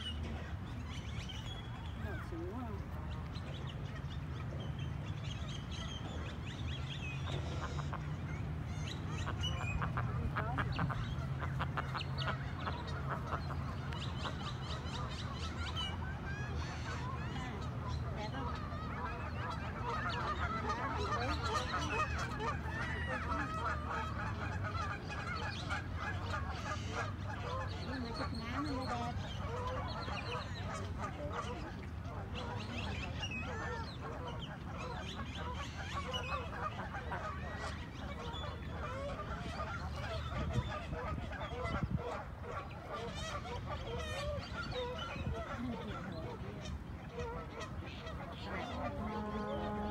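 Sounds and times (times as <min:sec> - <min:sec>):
ducks quacking: 0:08.9 - 0:49.9.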